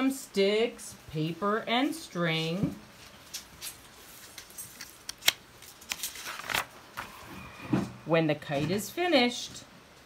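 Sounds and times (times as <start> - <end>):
book page rustling: 3.0 - 7.2.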